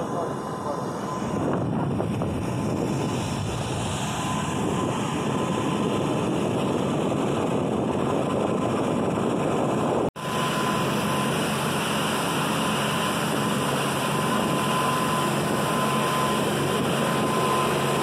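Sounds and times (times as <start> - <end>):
boat motor drone with whine: 0.0 - 18.0
wind rushing on microphone: 0.9 - 18.0.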